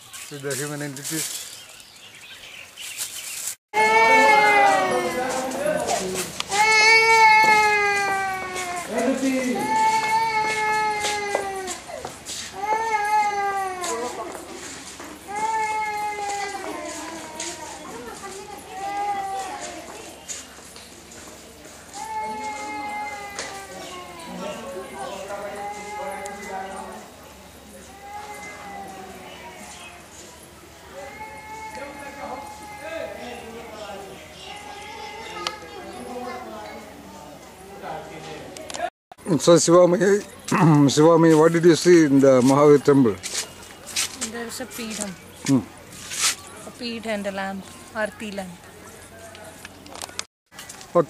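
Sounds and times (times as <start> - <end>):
birds: 0.0 - 3.6, 32.0 - 36.8
loud high wail falling in pitch: 3.8 - 5.4.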